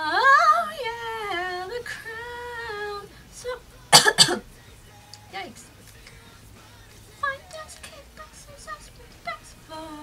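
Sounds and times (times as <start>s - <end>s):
woman coughing: 3.9s - 4.4s
woman singing held notes: 7.2s - 10.0s.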